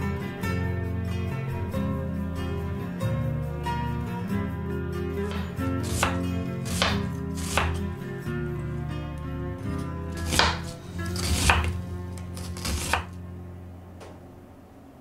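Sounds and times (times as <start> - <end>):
knife slicing onion on wooden board: 5.3 - 8.0, 9.7 - 13.2.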